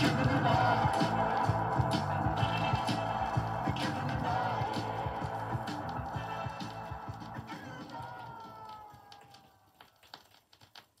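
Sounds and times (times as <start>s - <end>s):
song playing from vinyl record: 0.0s - 9.1s.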